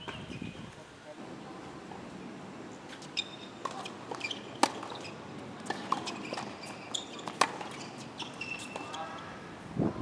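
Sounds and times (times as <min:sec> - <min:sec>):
faint court noise: 0:00.0 - 0:09.5
tennis racket hitting ball: 0:03.0 - 0:09.0.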